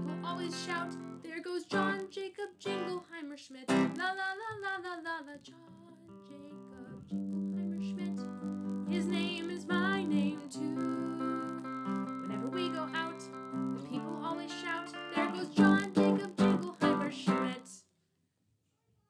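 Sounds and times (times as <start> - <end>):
electric guitar strumming: 0.0 - 2.0, 3.7 - 4.0, 7.2 - 17.6
woman singing: 0.0 - 17.8.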